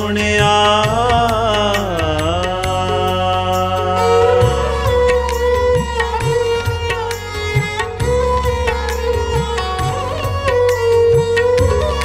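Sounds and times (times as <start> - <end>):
person singing: 0.0 - 7.0
harmonium notes: 0.0 - 12.0
tabla beat: 0.0 - 12.0.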